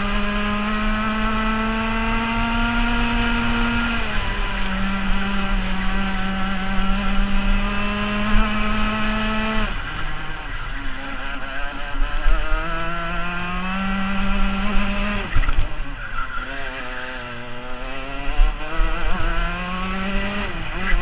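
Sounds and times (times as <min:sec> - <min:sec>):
kart engine revving: 0:00.0 - 0:21.0.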